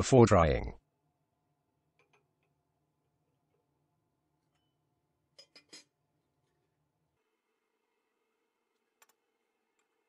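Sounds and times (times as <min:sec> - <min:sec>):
glassware clinking: 0:05.4 - 0:06.0.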